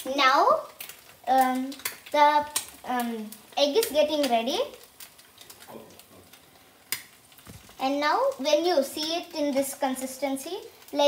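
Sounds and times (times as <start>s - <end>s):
egg sizzling on a griddle: 0.0s - 11.0s.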